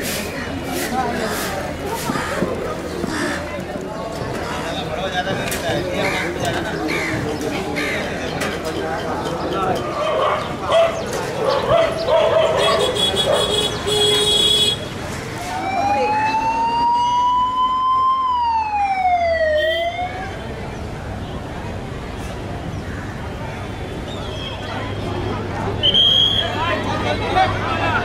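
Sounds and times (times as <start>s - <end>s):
street voices and bustle: 0.0s - 28.0s
siren wailing: 15.5s - 20.4s.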